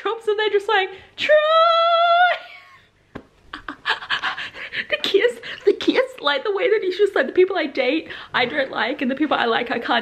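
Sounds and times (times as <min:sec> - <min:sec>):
woman laughing breathily: 0:03.5 - 0:05.7.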